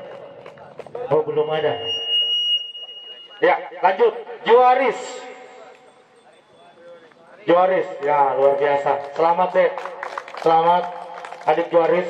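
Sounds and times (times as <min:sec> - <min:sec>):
man speaking into a microphone: 0:00.0 - 0:02.0, 0:03.2 - 0:05.8, 0:06.6 - 0:12.0.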